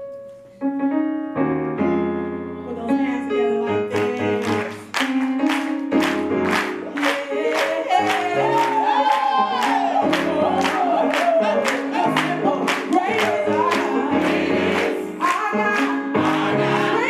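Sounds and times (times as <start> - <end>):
gospel choir singing: 3.2 - 17.0
hand claps: 4.0 - 13.9
woman singing vocal runs: 6.8 - 14.2.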